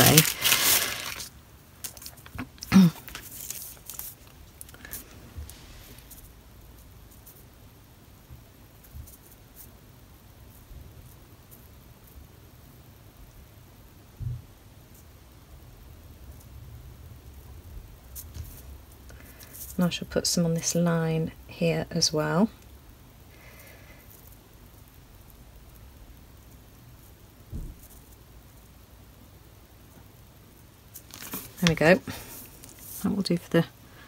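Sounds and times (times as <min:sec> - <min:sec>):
rustling: 0:00.0 - 0:07.5, 0:30.8 - 0:34.0.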